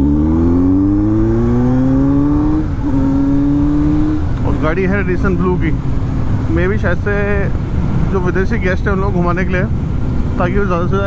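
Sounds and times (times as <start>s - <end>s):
motorcycle engine accelerating: 0.0s - 8.0s.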